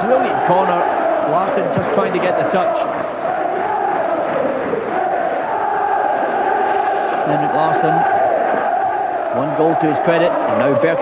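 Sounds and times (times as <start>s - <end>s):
stadium crowd chanting: 0.0s - 11.0s.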